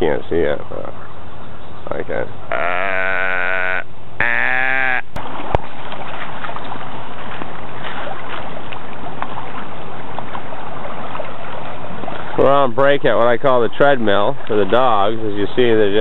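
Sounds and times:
long bleating calls: 2.5s - 5.2s
river current rushing: 2.5s - 12.5s.

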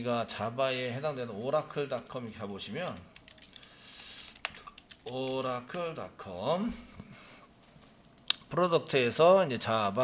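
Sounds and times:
typing on computer keyboard: 1.8s - 3.7s, 4.3s - 5.8s.

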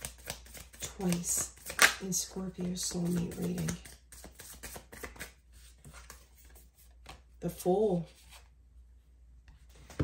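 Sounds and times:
cards flicking and rustling: 0.0s - 7.3s.

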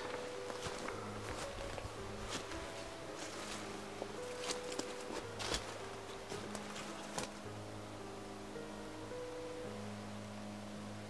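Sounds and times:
footsteps through dry undergrowth: 0.0s - 7.5s
twigs crackling and snapping: 0.0s - 7.5s
quiet musical drone: 0.0s - 11.0s.

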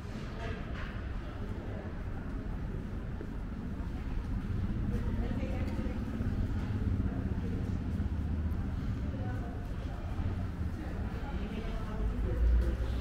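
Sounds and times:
indistinct voices of passers-by: 0.0s - 13.0s
low traffic rumble: 0.0s - 13.0s.

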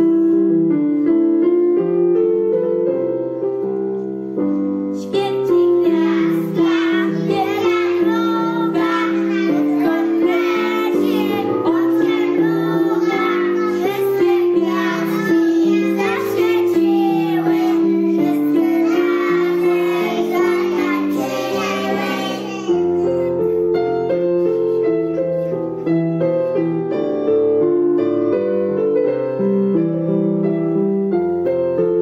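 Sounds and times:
instrumental accompaniment: 0.0s - 32.0s
children singing: 5.1s - 22.9s.

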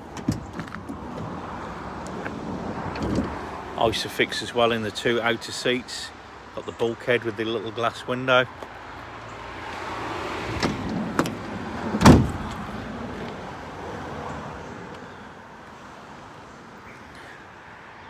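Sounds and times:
door slamming: 10.6s - 12.6s.

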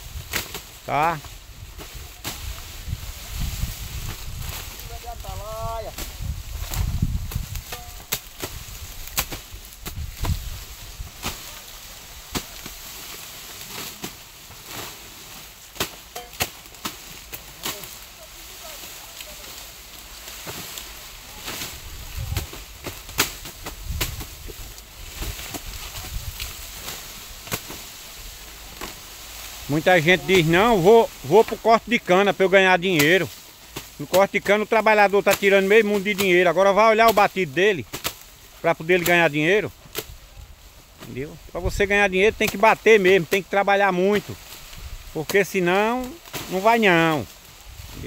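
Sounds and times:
rustling leaves and straw: 0.0s - 48.0s
knives chopping sugarcane: 0.3s - 0.8s, 6.7s - 10.4s, 15.7s - 18.0s, 22.3s - 24.4s, 26.4s - 27.9s, 37.9s - 38.2s.

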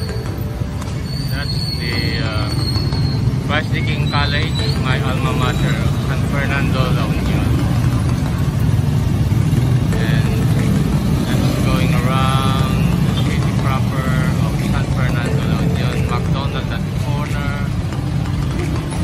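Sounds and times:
traffic engines rumbling: 0.0s - 19.0s
indistinct voices: 9.7s - 19.0s.

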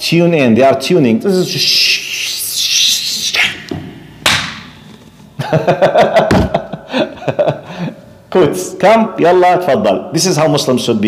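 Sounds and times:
man hissing shh: 1.4s - 3.7s
laughter: 5.4s - 7.7s.

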